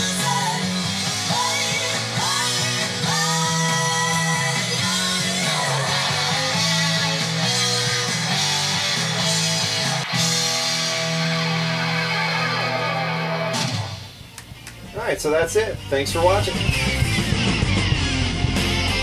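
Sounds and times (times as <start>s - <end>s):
rock song with guitar: 0.0s - 15.0s, 15.8s - 19.0s.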